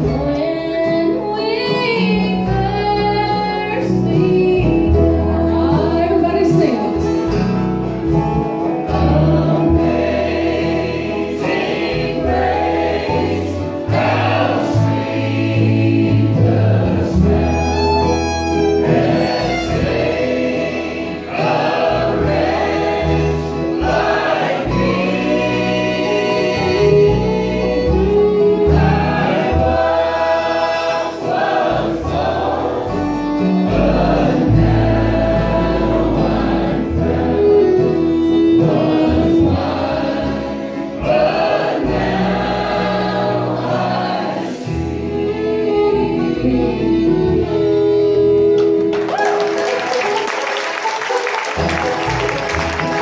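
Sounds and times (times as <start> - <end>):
bluegrass band playing: 0.0 - 53.0
voices singing in harmony: 8.1 - 48.8.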